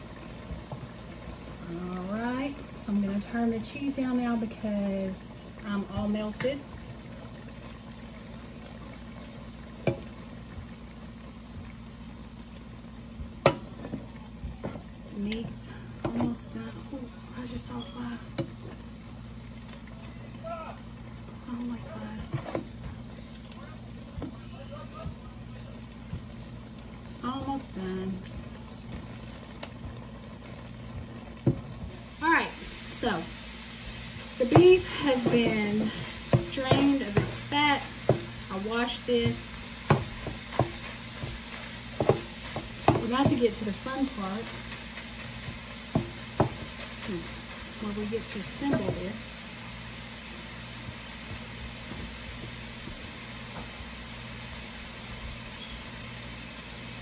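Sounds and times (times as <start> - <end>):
constant low hum: 0.0 - 57.0
meat sizzling in a pot: 0.0 - 57.0
utensils knocking against pot: 34.4 - 44.8, 48.5 - 49.1.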